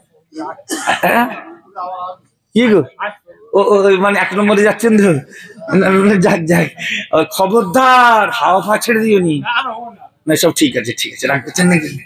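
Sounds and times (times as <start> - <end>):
man making vocal sounds: 0.3 - 1.8.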